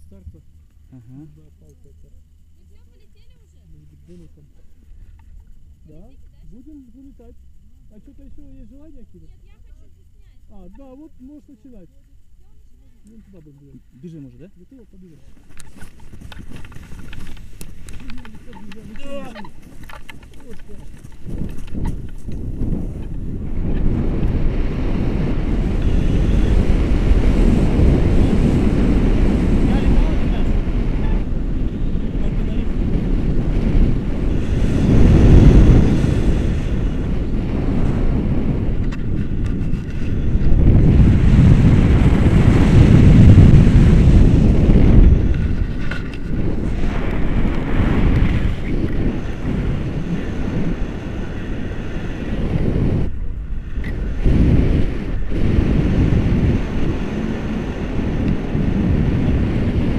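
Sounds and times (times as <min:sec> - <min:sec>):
wind rumbling on microphone: 0:00.0 - 0:59.9.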